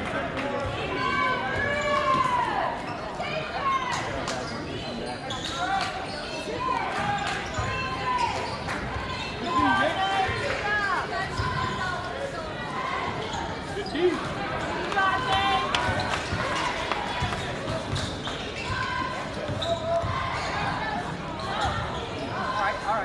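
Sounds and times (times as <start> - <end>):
sneakers squeaking: 0.6 - 23.0.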